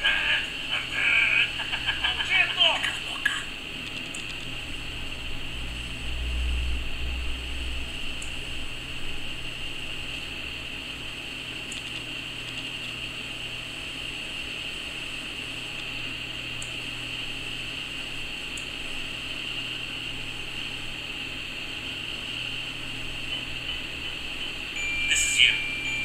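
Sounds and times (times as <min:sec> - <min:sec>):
constant hiss: 0:00.0 - 0:06.6, 0:11.7 - 0:26.0
low hum: 0:03.2 - 0:10.8.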